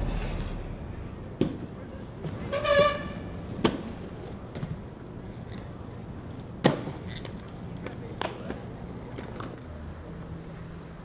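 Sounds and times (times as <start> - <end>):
low background rumble: 0.0 - 2.2
inline skate clacking on concrete: 6.6 - 9.6.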